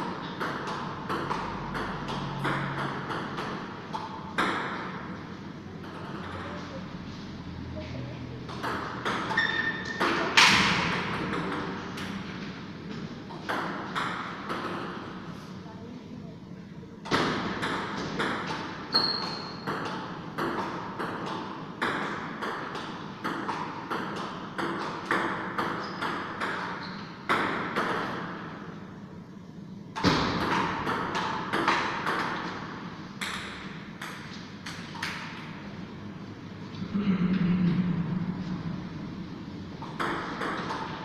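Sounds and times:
ping pong ball clicking off paddles: 0.0 - 4.9, 8.5 - 12.2, 13.3 - 15.1, 17.1 - 28.4, 29.9 - 35.5, 39.8 - 41.0
ball bouncing on table: 0.4 - 4.9, 8.5 - 12.2, 17.1 - 28.2, 39.8 - 41.0.

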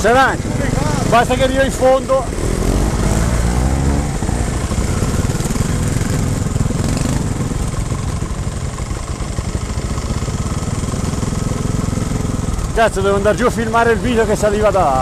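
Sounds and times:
motorcycle engine idling: 0.0 - 3.2, 4.0 - 15.0.

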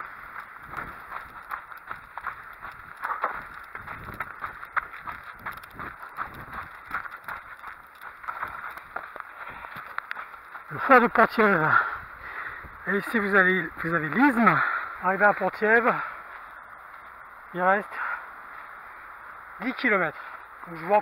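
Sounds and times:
running footsteps on sandy path: 0.0 - 21.0
steady hiss: 9.2 - 21.0.

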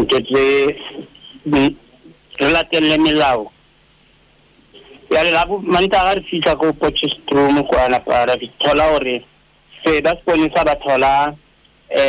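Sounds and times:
man talking on radio: 0.0 - 3.5, 4.8 - 12.0.

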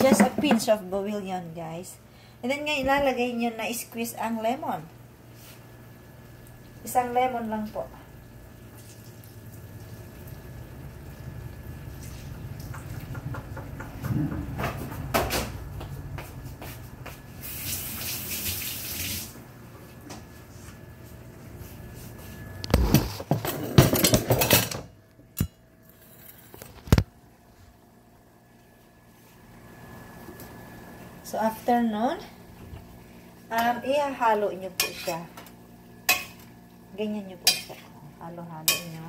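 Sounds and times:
tap water running: 8.6 - 15.0, 17.4 - 19.4
pans clattering: 22.8 - 24.9.

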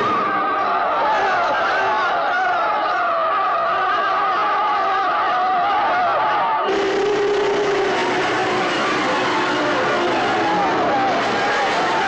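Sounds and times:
crowd of men shouting: 0.0 - 12.0
steady held tone: 6.7 - 10.6.

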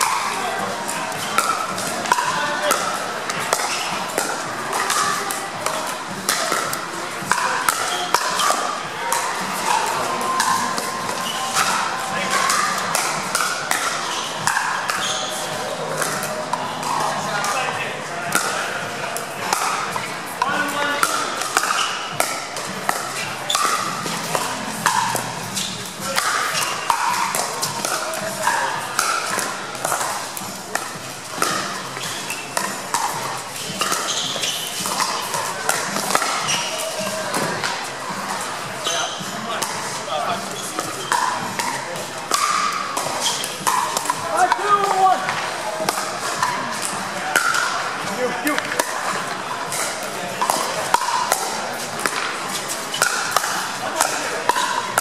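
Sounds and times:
ball bouncing on court: 0.0 - 55.0
indistinct spectator chatter: 0.0 - 55.0
paddles hitting ball: 0.0 - 55.0.

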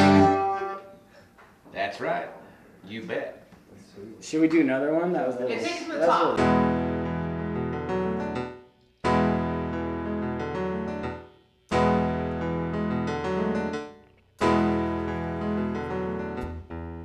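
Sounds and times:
electric keyboard chords: 0.0 - 1.0, 6.4 - 17.0.

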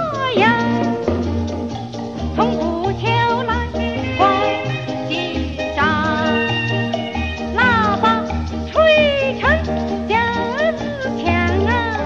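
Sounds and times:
steady bass: 0.0 - 12.0
swing dance-band music: 0.0 - 12.0.

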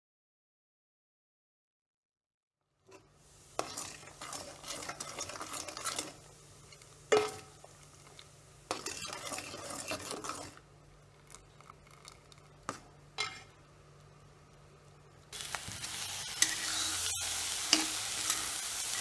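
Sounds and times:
spoon scraping metal pot: 3.6 - 7.4, 8.7 - 10.6, 16.4 - 18.6.

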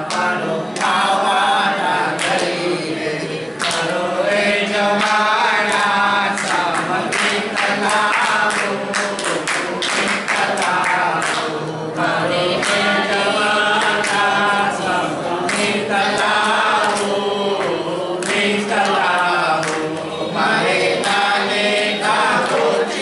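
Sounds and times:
group of people singing: 0.0 - 23.0
rhythmic hand-clapping: 0.0 - 23.0.

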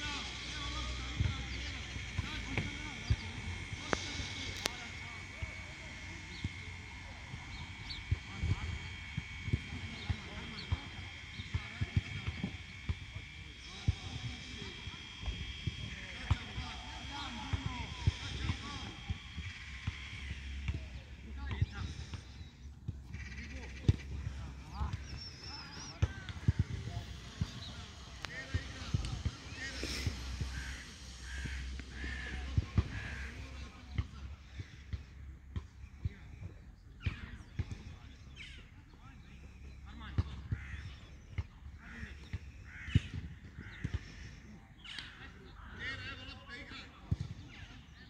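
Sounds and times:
steady high whine: 0.0 - 47.0
birds chirping: 0.0 - 48.0.

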